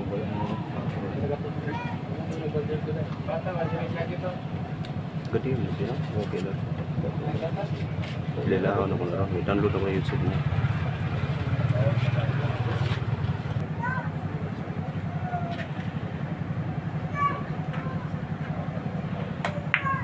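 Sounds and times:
engine droning: 0:00.0 - 0:20.0
faint voices: 0:00.0 - 0:20.0.

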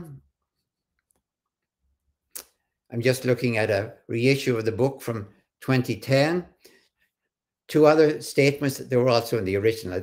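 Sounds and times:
man talking: 0:00.0 - 0:00.3, 0:02.4 - 0:06.7, 0:07.6 - 0:10.0.

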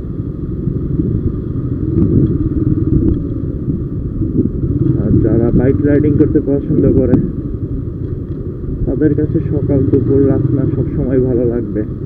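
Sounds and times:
motorcycle engine rumbling: 0:00.0 - 0:12.0
wind noise: 0:00.0 - 0:12.0
people talking: 0:05.0 - 0:07.3, 0:08.9 - 0:11.9.

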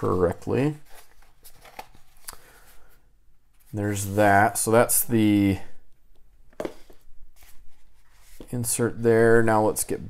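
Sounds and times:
paper rustling: 0:00.6 - 0:03.0, 0:06.6 - 0:08.6.

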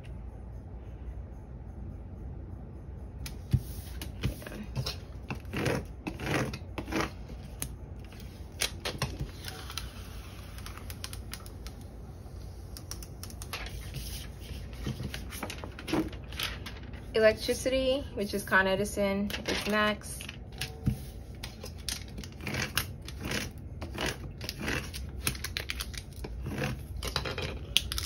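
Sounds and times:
transfer tape crackling: 0:08.5 - 0:12.0.

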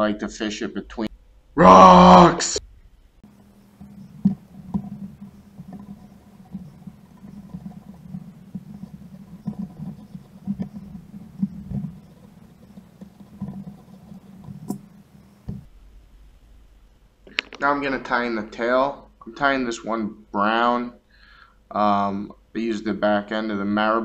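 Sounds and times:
steady low hum: 0:00.0 - 0:23.1
small clicks: 0:17.3 - 0:17.7.

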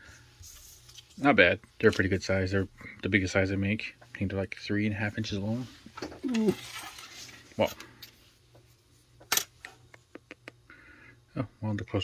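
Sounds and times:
paper rustle: 0:06.3 - 0:07.6.

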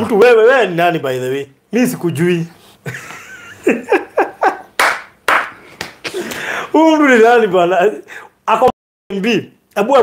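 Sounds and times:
man laughing: 0:02.8 - 0:04.8
hand claps: 0:04.8 - 0:06.5.

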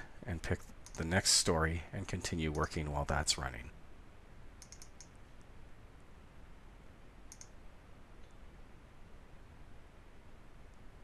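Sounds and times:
low steady hiss: 0:00.0 - 0:11.0
computer mouse clicks: 0:00.6 - 0:01.1, 0:04.6 - 0:05.2, 0:07.3 - 0:07.6.

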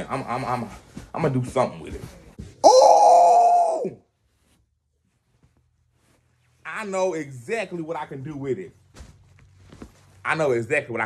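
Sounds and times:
man's high-pitched exclamation: 0:02.6 - 0:04.0.

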